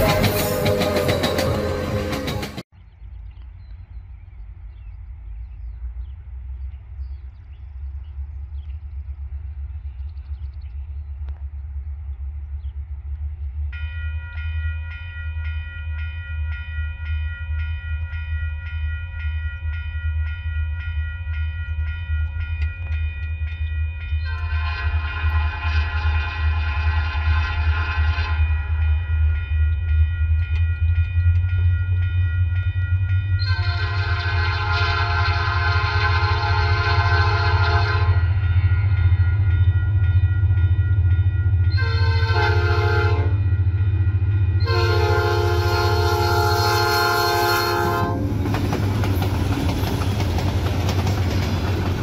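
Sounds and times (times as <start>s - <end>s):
pulsing high ringing: 13.7s - 48.2s
locomotive air horn blasts: 24.3s - 28.8s, 33.4s - 38.4s, 41.7s - 43.5s, 44.1s - 48.3s.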